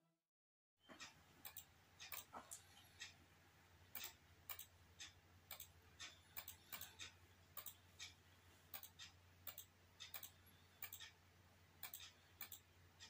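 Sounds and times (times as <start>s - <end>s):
faint low hum: 0.8s - 13.0s
computer mouse clicking: 1.0s - 3.1s, 3.9s - 11.2s, 11.8s - 12.7s.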